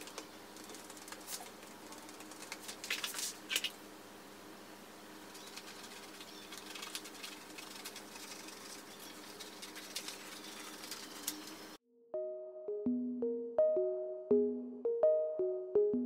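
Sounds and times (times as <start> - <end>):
plastic sheet rustling: 5.7 - 11.8.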